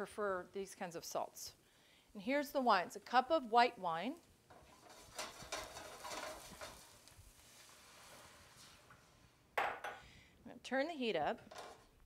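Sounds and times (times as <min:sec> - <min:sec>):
pan clatter: 0:04.5 - 0:07.0.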